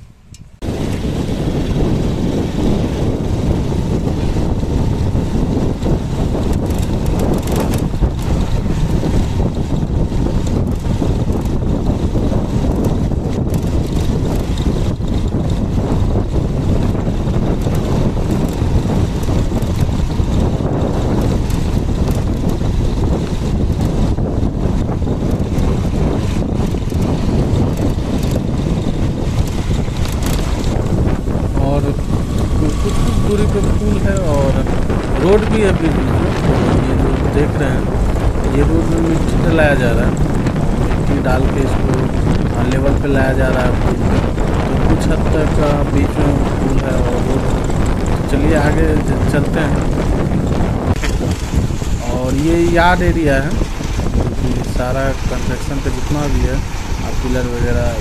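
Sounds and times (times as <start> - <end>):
wind buffeting microphone: 0.0 - 58.0
motorcycle engine running: 0.4 - 58.0.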